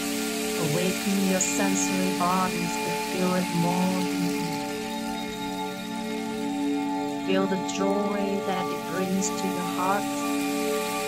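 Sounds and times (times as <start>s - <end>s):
fine even hiss: 0.0s - 11.0s
slow new-age music: 0.0s - 11.0s.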